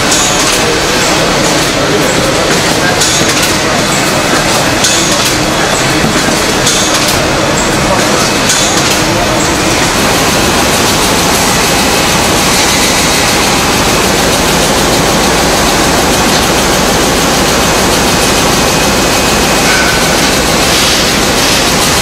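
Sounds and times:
packing machinery running: 0.0s - 22.0s.

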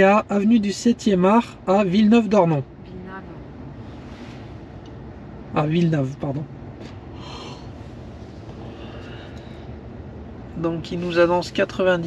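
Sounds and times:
low rumble inside car cabin: 0.0s - 12.0s.

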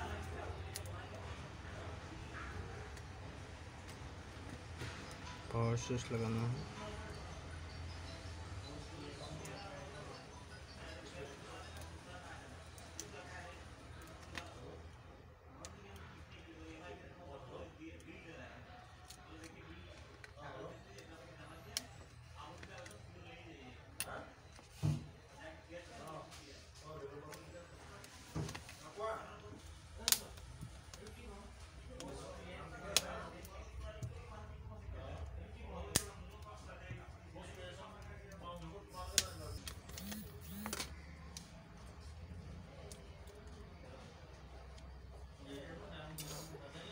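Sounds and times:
faint voices murmuring: 0.0s - 46.9s.

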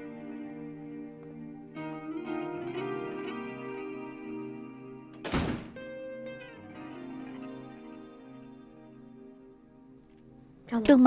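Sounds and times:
soft guitar music: 0.0s - 11.0s
door shutting thud: 5.2s - 5.9s.

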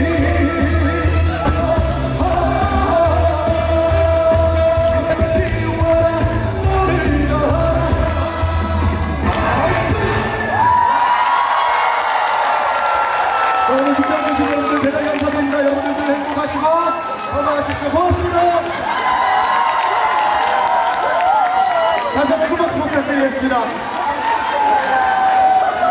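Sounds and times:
backing music with bass beat: 0.0s - 10.6s
man singing into a microphone: 0.0s - 10.6s.

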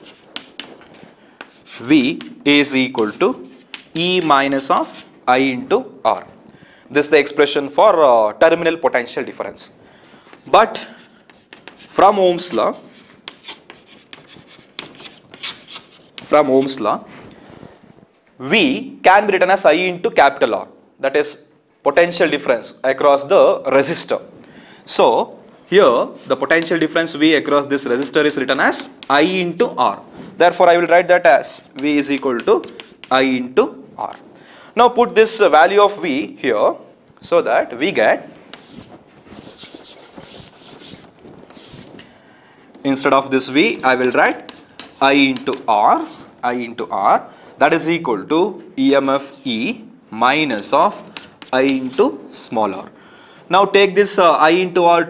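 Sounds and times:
chalk scratching on a chalkboard: 0.0s - 5.2s, 10.5s - 16.8s, 31.4s - 33.4s, 38.5s - 42.0s, 43.7s - 46.4s, 50.6s - 52.2s.

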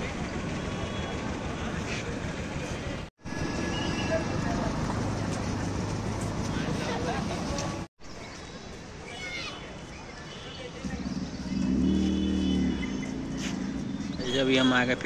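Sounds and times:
traffic noise: 0.0s - 15.0s.

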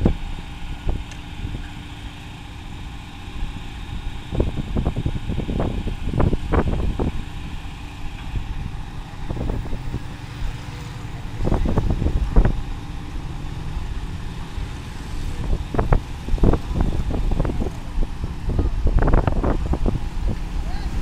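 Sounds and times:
crane engine rumbling: 0.0s - 21.0s.

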